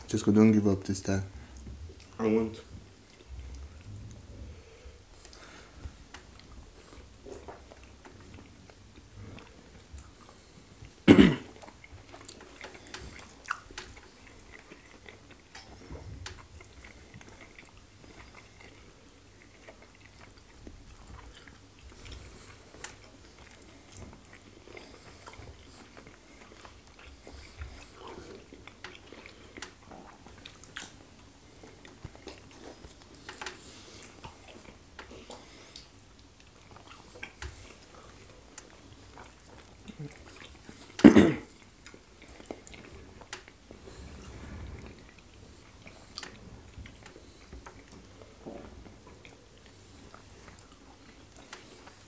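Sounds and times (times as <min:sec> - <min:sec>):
chewing and wet mouth sounds: 0:00.0 - 0:52.0.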